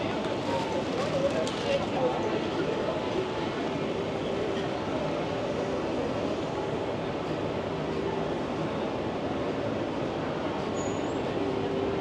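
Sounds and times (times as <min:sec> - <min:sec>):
street crowd hubbub: 0:00.0 - 0:12.0.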